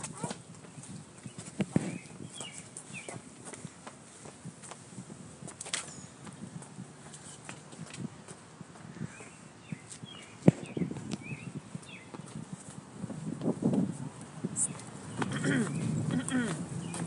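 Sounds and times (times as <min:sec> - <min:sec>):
footsteps outdoors: 0:00.0 - 0:17.0
bird chirps: 0:00.8 - 0:03.2, 0:09.0 - 0:12.3.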